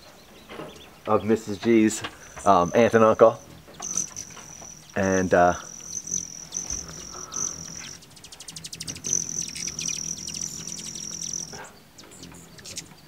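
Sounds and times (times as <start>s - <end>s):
faint low wing hum: 0.0s - 13.0s
rapid ticking: 1.1s - 13.0s
hummingbird whistling trill: 2.2s - 13.0s.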